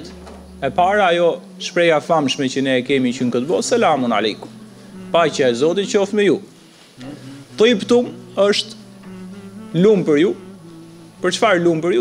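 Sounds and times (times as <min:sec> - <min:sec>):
man speaking: 0:00.0 - 0:08.8, 0:09.7 - 0:10.6, 0:11.2 - 0:12.0
low electrical buzz: 0:00.0 - 0:12.0.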